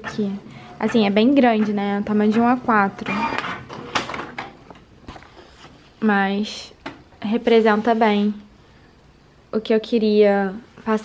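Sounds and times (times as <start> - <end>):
printer paper feed running: 0.4 - 4.4
sharp printer clicks: 0.8 - 4.9.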